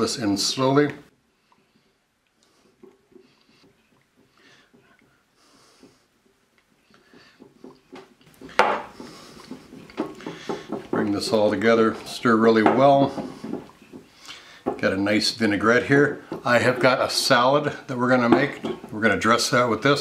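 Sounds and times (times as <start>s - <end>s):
whisk beating in glass bowl: 7.0s - 20.0s.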